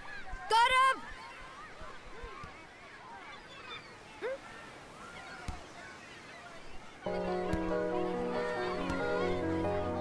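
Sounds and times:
flock of birds calling: 0:03.0 - 0:10.0.

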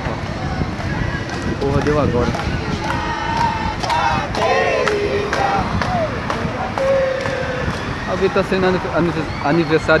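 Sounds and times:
sing-song voice: 0:00.0 - 0:08.1
traffic noise: 0:00.0 - 0:10.0
wind: 0:00.0 - 0:10.0.

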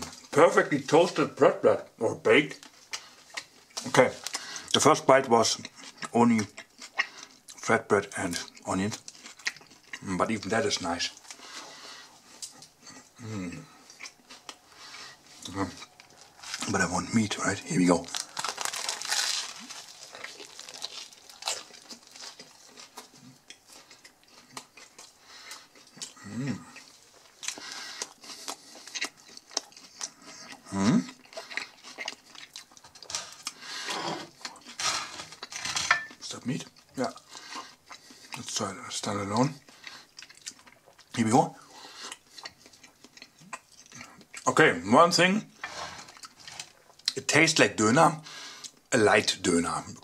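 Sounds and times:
chewing crisp flatbread: 0:02.5 - 0:44.5, 0:45.4 - 0:47.3.

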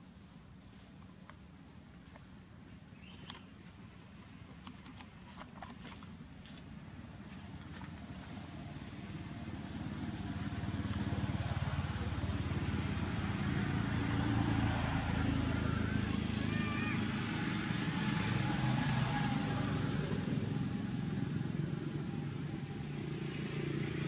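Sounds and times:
engine running low hum: 0:00.0 - 0:24.0.

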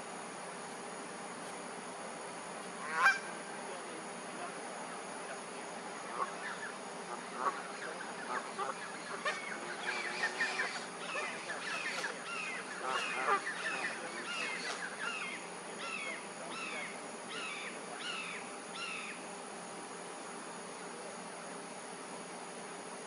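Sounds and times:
overlapping bird calls: 0:06.0 - 0:19.2
loud bird call: 0:06.1 - 0:19.2.

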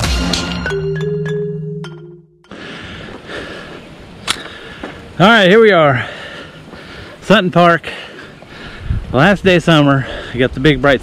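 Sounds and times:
sharp click: 0:04.2 - 0:04.5
wind noise on microphone: 0:08.5 - 0:11.0.

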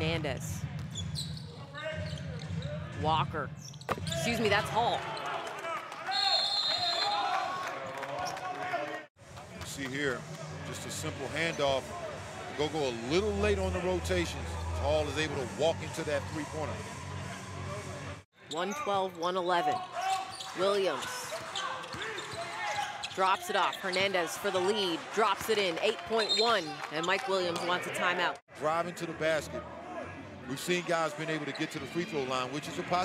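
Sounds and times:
basketball bouncing on court: 0:00.6 - 0:01.4.

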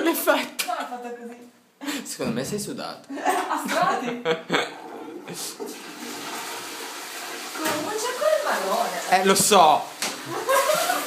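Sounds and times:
toilet flushing: 0:04.5 - 0:11.0.

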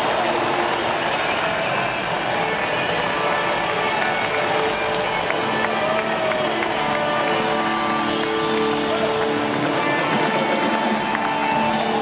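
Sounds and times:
crowd noise: 0:00.0 - 0:12.0
live rock band playing: 0:02.3 - 0:12.0.

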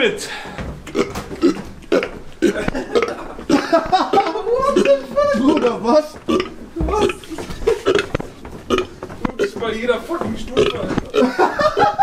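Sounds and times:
man burping: 0:00.9 - 0:08.1, 0:08.7 - 0:09.5, 0:10.6 - 0:11.4.

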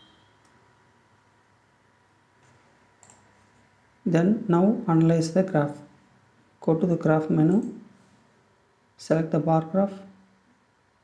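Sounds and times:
computer mouse clicks: 0:02.4 - 0:03.3.

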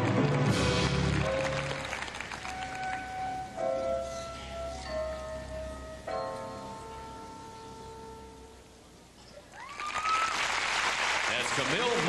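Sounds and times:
crowd applauding and cheering: 0:00.0 - 0:03.6, 0:09.4 - 0:12.0
gymnastics floor music: 0:00.0 - 0:09.9.

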